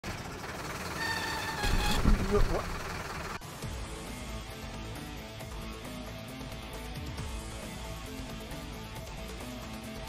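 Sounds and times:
truck engine rumble and hiss: 0:00.0 - 0:06.2.

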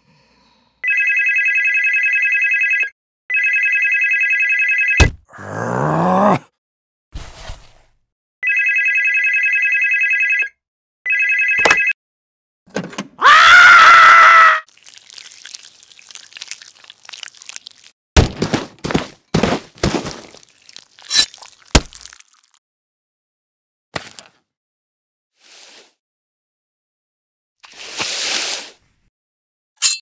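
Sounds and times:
telephone warbling ring: 0:00.8 - 0:05.0, 0:08.4 - 0:12.0
rising groan: 0:05.3 - 0:06.5
loud drawn-out cry: 0:13.2 - 0:14.7.

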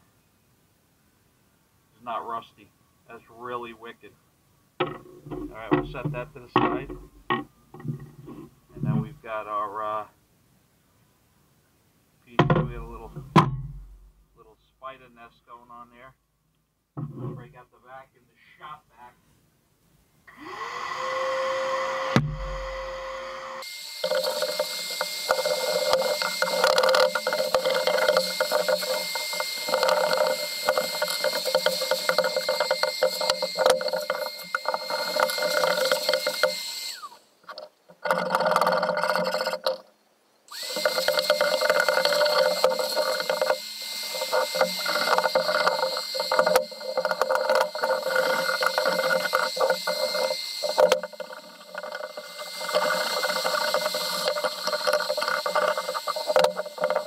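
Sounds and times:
shop vacuum whining: 0:20.3 - 0:37.3, 0:40.5 - 0:57.0.

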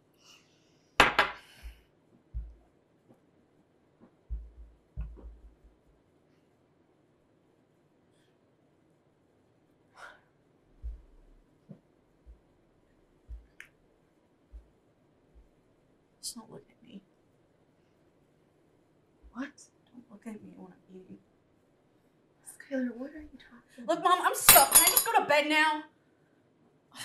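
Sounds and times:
dull low thuds: 0:01.7 - 0:02.7, 0:04.3 - 0:05.9, 0:10.7 - 0:11.4, 0:13.2 - 0:13.6, 0:14.5 - 0:15.6
dull low thump: 0:02.4 - 0:02.6, 0:04.3 - 0:05.8, 0:10.8 - 0:11.4
tableware clinking: 0:24.5 - 0:25.2.

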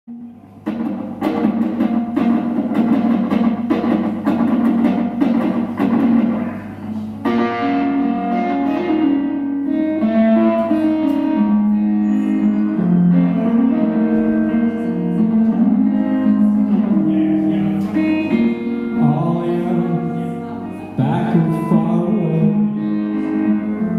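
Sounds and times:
electric guitar playing: 0:00.1 - 0:23.9.

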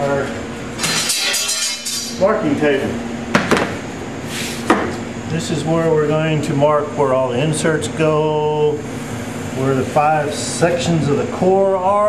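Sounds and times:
metal square scraping: 0:00.8 - 0:02.2.

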